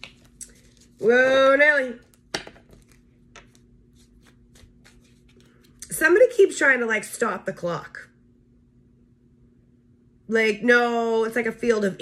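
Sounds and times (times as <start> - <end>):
cards shuffled by hand: 0.0 - 1.1, 2.0 - 5.9.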